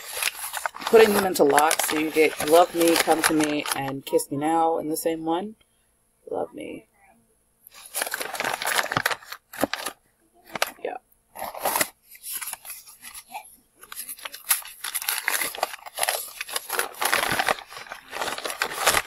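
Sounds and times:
newspaper rustling and tearing: 0.0s - 3.9s, 7.7s - 10.8s, 11.4s - 19.0s.

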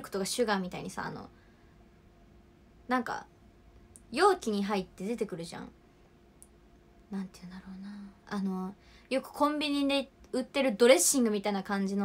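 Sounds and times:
woman speaking: 0.0s - 1.3s, 2.9s - 3.3s, 4.0s - 5.7s, 7.1s - 12.0s.

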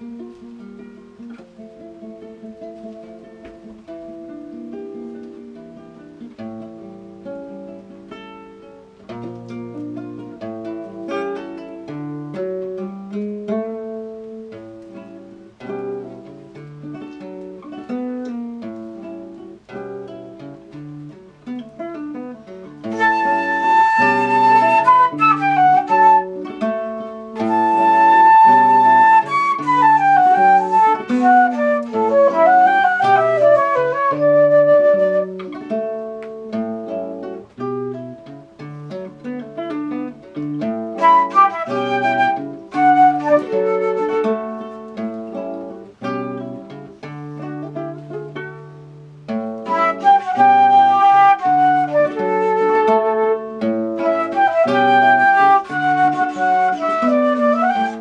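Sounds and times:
nylon-string acoustic guitar: 0.0s - 58.0s
woodwind melody with slides: 22.8s - 26.6s, 27.4s - 35.6s, 40.9s - 44.9s, 49.6s - 58.0s.

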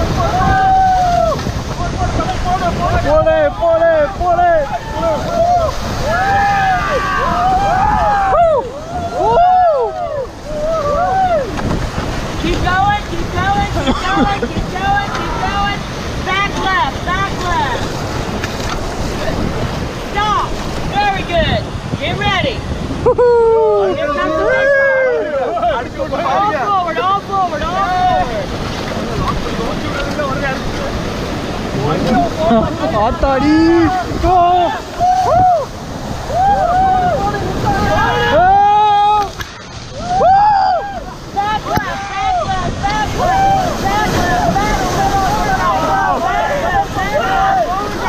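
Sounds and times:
people yelling and whooping: 0.0s - 11.8s, 23.0s - 28.6s, 31.7s - 48.0s
whitewater rushing: 0.0s - 48.0s
wind buffeting microphone: 0.0s - 48.0s.

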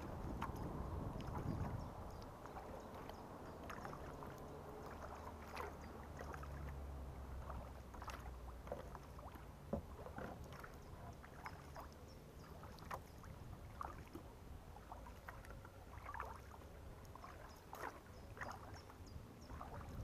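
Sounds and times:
paddle splashing water: 0.0s - 20.0s.

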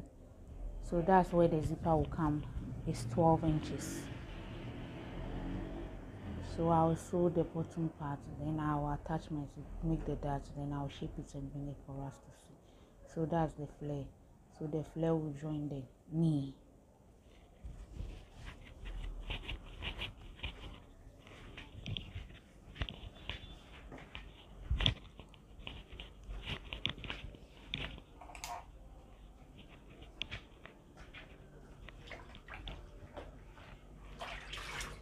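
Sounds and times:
fabric rustling: 17.2s - 35.0s.

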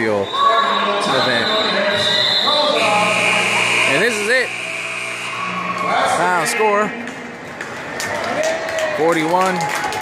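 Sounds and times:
people talking: 0.0s - 4.5s
steady high-pitched tone: 0.3s - 7.1s.

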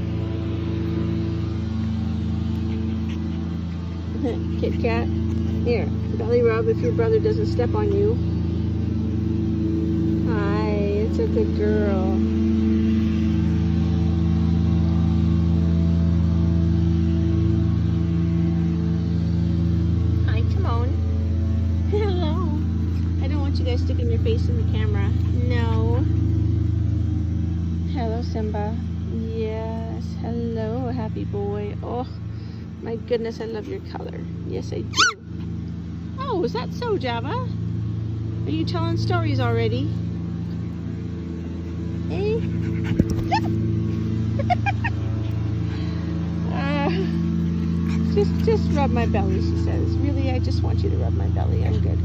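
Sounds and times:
lawn mower engine running: 0.0s - 52.0s.

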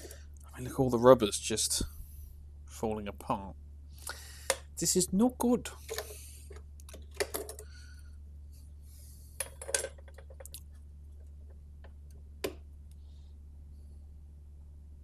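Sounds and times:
steady low hum: 0.0s - 15.0s.

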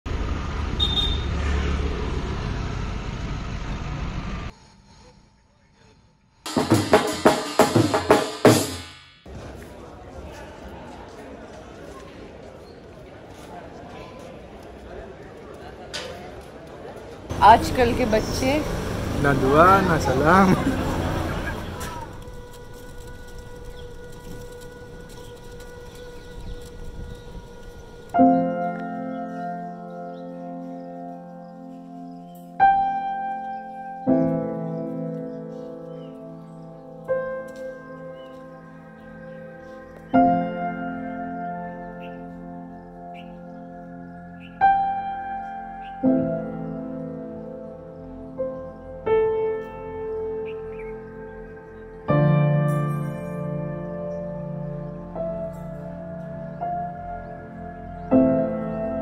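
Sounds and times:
road traffic noise: 0.1s - 5.2s, 9.1s - 52.1s
voices: 9.3s - 25.9s
crackling hiss: 21.4s - 29.0s.

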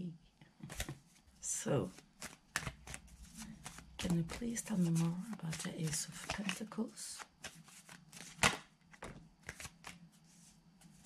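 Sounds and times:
cards being shuffled: 0.6s - 11.0s.

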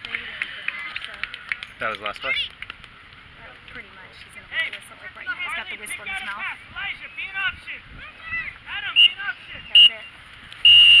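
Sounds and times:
referee's whistle blasts: 8.9s - 11.0s.

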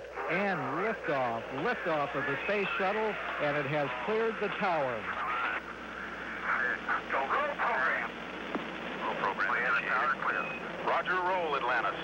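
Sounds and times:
hissy radio channel: 0.0s - 12.0s
radioed voice fragments: 0.0s - 12.0s.

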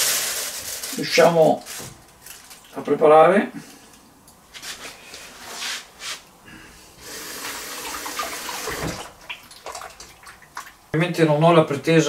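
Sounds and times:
rustling and handling: 0.0s - 2.8s, 4.4s - 6.2s.

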